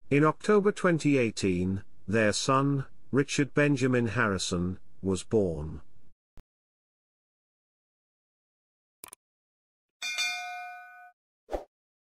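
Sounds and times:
bright bell ding: 0:10.0 - 0:11.2.

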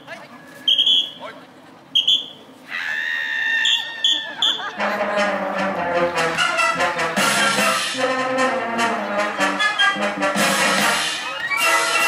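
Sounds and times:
shrill whistle-like toots: 0:00.6 - 0:01.2, 0:02.0 - 0:02.4, 0:03.6 - 0:04.7.

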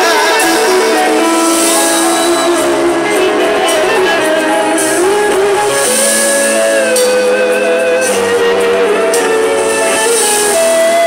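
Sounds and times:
electric guitar long note: 0:00.0 - 0:11.0
live band music: 0:00.0 - 0:11.0.

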